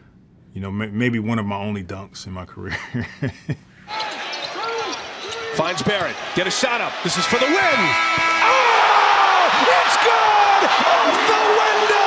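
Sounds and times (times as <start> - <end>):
sneakers squeaking: 3.9 - 6.2
crowd noise: 3.9 - 12.0.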